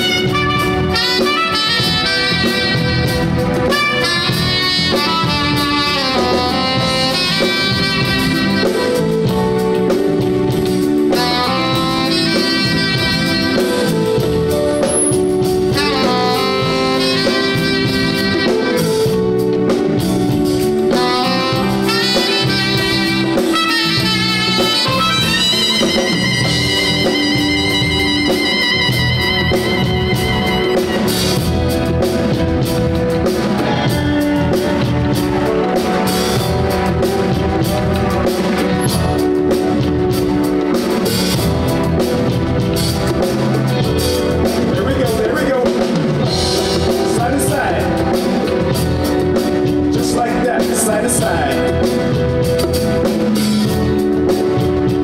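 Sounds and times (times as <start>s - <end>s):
soprano saxophone melody: 0.0s - 44.7s
live band with drums: 0.0s - 55.0s.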